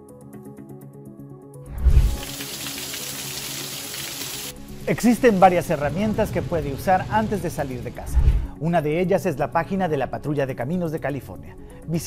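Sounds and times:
heavy rain on pavement: 2.1s - 4.6s, 5.4s - 8.0s.

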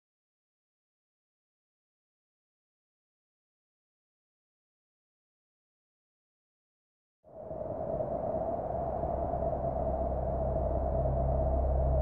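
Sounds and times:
sustained horror drone: 7.6s - 12.0s.

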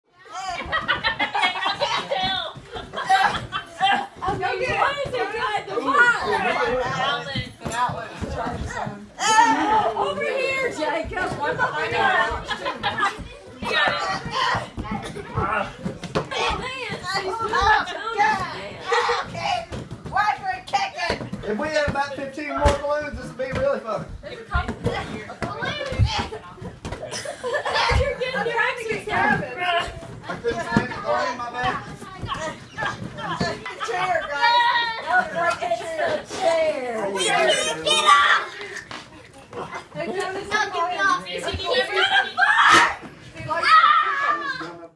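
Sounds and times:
children and adults talking: 0.1s - 44.9s
children shouting and squealing: 33.6s - 35.6s, 41.7s - 44.8s.

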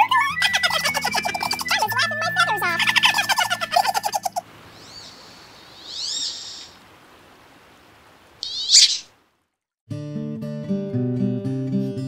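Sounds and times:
high-pitched cartoon chatter: 0.0s - 4.4s
light music: 0.0s - 4.4s
bird chirps: 2.6s - 6.8s, 8.4s - 9.1s
soft hiss: 4.2s - 9.4s
loud shrill bird call: 4.8s - 6.8s, 8.4s - 9.1s.

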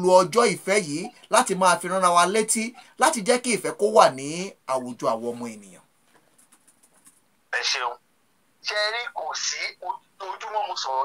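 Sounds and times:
person talking: 0.0s - 5.8s.

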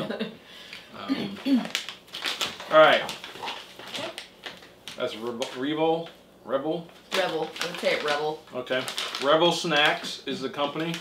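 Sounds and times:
plastic snack pouch crackling: 1.4s - 4.7s, 7.1s - 11.0s.

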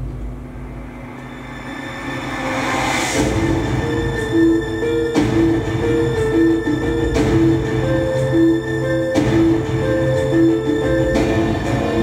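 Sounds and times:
low rumble: 0.0s - 8.5s
film trailer music: 0.0s - 12.0s.

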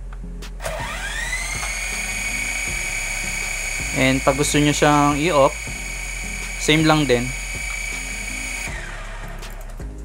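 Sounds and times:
toy drone motors whining: 0.6s - 9.8s.

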